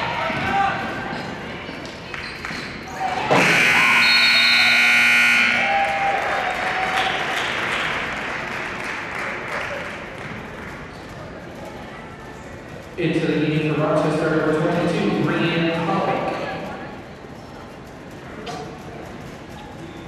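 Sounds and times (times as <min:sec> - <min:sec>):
crowd noise and voices: 0:00.0 - 0:20.0
scoreboard buzzer blast: 0:03.3 - 0:05.8.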